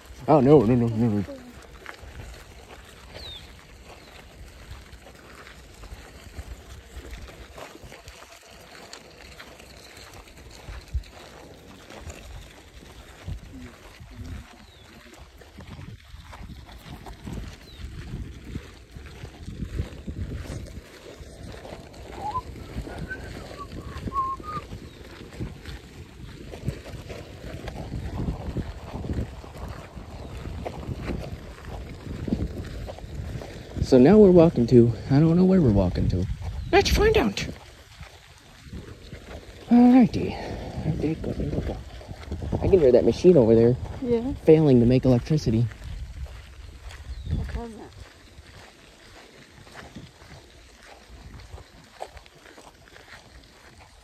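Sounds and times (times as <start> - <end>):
footsteps on gravel: 0.0 - 54.0.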